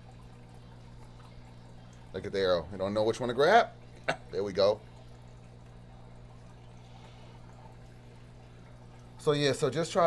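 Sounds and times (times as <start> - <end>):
pump electrical hum: 0.0 - 10.0
water trickling: 0.0 - 10.0.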